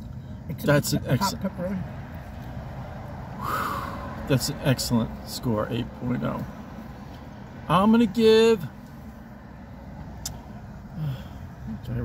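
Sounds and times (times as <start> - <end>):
low hum inside car cabin: 0.0 - 12.0.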